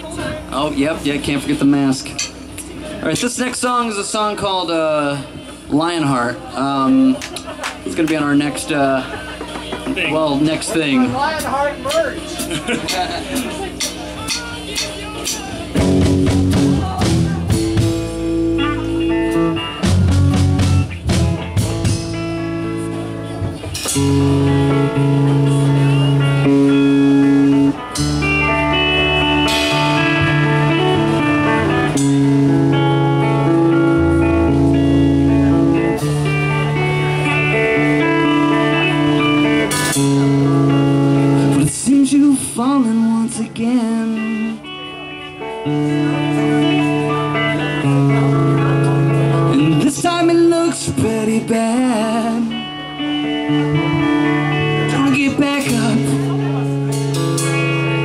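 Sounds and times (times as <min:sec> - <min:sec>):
rock band playing: 0:00.0 - 0:58.0
bent guitar notes: 0:09.4 - 0:58.0.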